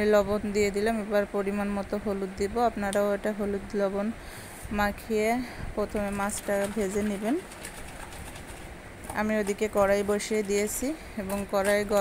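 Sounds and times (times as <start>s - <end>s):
woman speaking: 0.0s - 7.5s, 9.1s - 12.0s.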